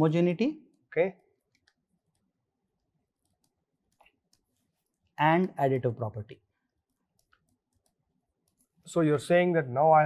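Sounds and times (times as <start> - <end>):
stylus clicking on a tablet: 0.7 - 5.2, 6.8 - 8.9.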